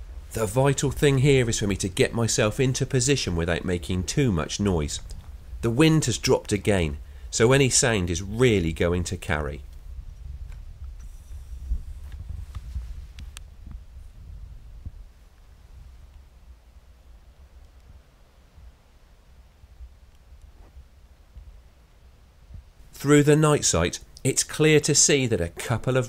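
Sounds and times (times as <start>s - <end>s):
low outdoor rumble: 0.0s - 26.0s
rustling in grass: 11.1s - 14.2s.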